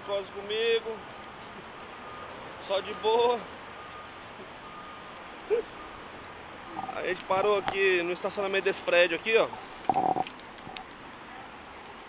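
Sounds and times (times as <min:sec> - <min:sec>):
city background noise: 0:00.0 - 0:12.0.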